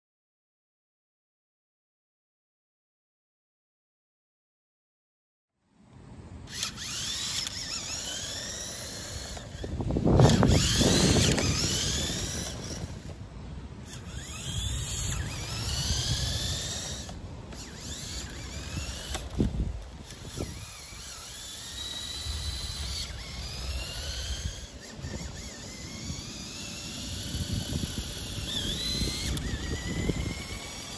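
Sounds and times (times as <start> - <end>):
toy car motor whining: 6.4 - 13.2, 13.8 - 30.9.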